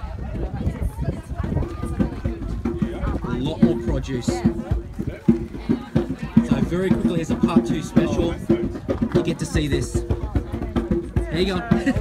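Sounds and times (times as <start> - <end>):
people talking: 0.0 - 12.0
wind buffeting microphone: 0.0 - 12.0.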